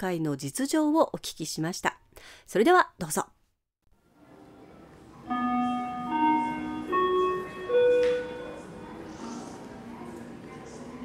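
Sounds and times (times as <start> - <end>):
musical jingle rising held notes: 5.3 - 9.0.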